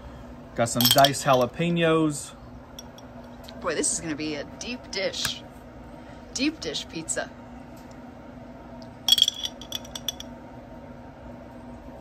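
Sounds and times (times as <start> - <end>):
low steady hum: 0.0 - 12.0
metal fork clinking on glass jar: 0.8 - 1.5, 9.1 - 10.3.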